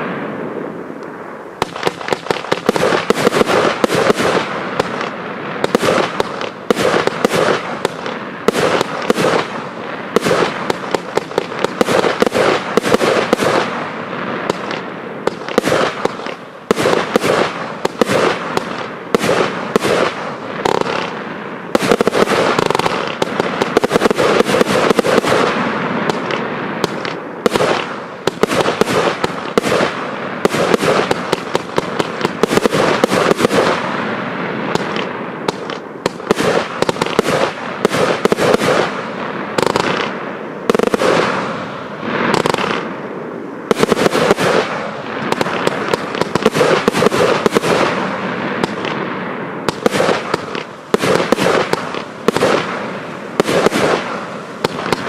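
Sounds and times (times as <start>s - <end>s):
fireworks bangs: 0.0s - 55.0s.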